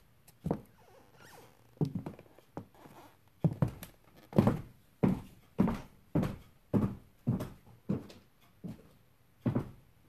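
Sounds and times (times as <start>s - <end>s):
floorboards squeaking: 0.5s - 4.7s
high heels on hardwood floor: 1.3s - 8.8s.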